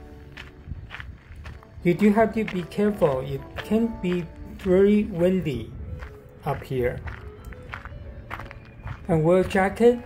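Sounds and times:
wind rumble on microphone: 0:00.0 - 0:09.9
background music: 0:00.0 - 0:10.0
footsteps on a dirt trail: 0:00.0 - 0:10.0
person speaking: 0:01.8 - 0:05.8, 0:06.4 - 0:07.1.

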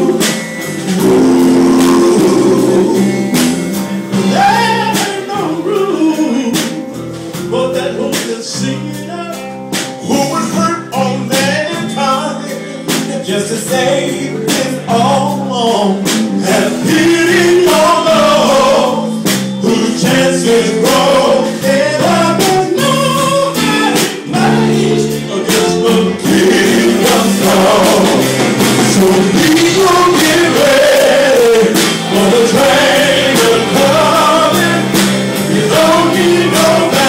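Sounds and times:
drums: 0:00.0 - 0:37.0
electric guitar: 0:00.0 - 0:37.0
male voices singing: 0:00.0 - 0:37.0.

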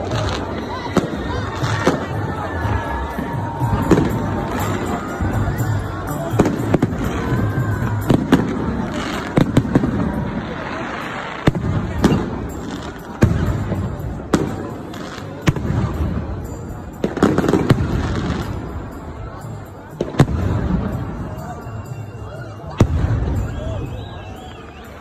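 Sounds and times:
fireworks bangs: 0:00.0 - 0:18.9
crowd noise: 0:00.0 - 0:25.0.

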